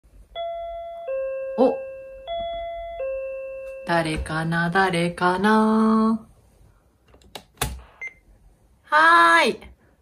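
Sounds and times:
two-note intercom door chime: 0:00.4 - 0:04.1.

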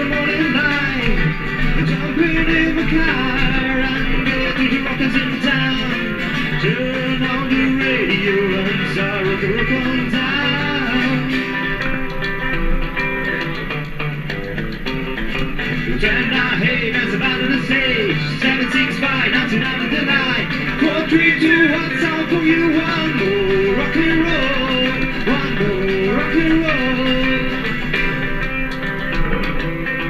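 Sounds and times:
acoustic rhythm guitar: 0:00.0 - 0:30.0
electric lead guitar bending notes: 0:00.0 - 0:30.0.

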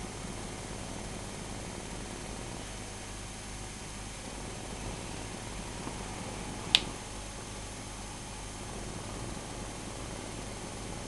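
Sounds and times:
steady low hiss: 0:00.0 - 0:11.0
sharp click: 0:06.7 - 0:07.0.

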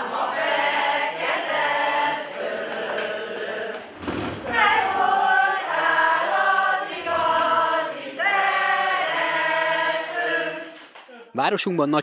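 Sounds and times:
women singing folk song: 0:00.0 - 0:11.0.

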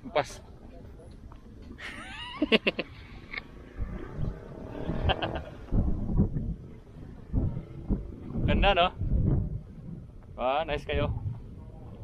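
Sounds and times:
wind buffeting microphone: 0:02.9 - 0:12.0.

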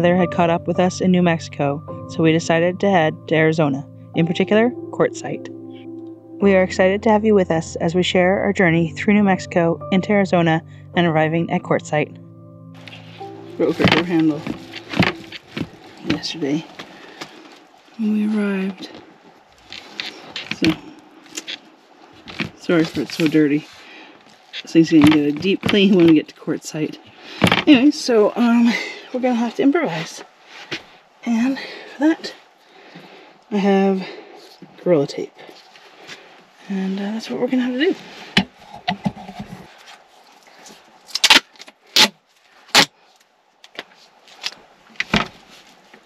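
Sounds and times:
tape ripping off roll: 0:41.1 - 0:42.9.

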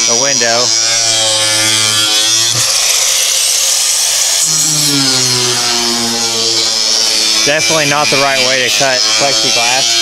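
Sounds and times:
angle grinder cutting plexiglass: 0:00.0 - 0:10.0.

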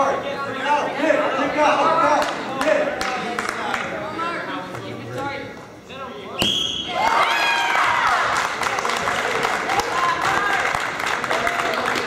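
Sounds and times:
referee's whistle blast: 0:06.4 - 0:07.0
spectators cheering and shouting: 0:06.9 - 0:08.4.

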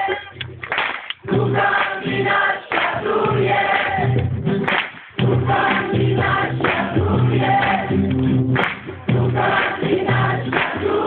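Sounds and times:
group singing in chorus: 0:00.0 - 0:00.4, 0:01.2 - 0:04.6, 0:05.2 - 0:08.2, 0:09.1 - 0:11.0.

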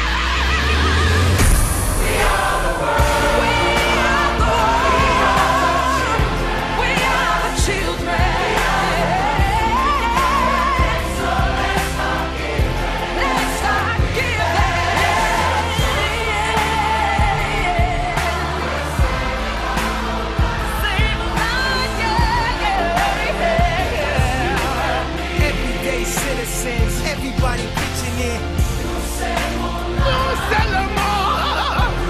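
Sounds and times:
chorus singing pop ballad: 0:00.0 - 0:32.0
lead voice singing: 0:00.0 - 0:32.0
bass and drum beat: 0:01.2 - 0:32.0.

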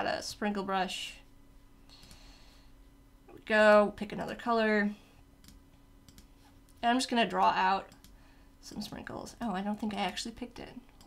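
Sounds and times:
woman speaking: 0:00.0 - 0:01.3, 0:03.3 - 0:05.0, 0:06.8 - 0:07.9, 0:08.6 - 0:10.9
faint steady hum: 0:00.0 - 0:11.0
computer mouse clicks: 0:05.4 - 0:06.8, 0:07.9 - 0:08.2.

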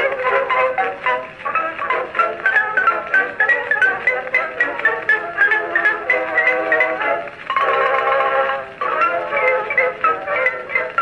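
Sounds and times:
xylophone solo on phonograph: 0:00.0 - 0:11.0.

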